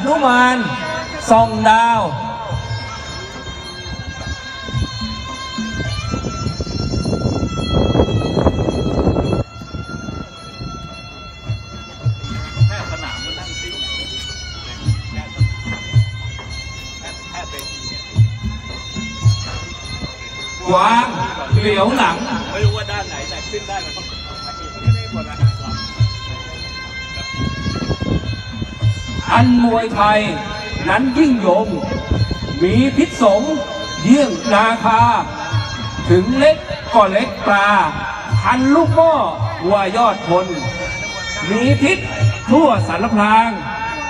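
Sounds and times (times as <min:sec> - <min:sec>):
reedy oboe holding a high note: 0:00.0 - 0:44.0.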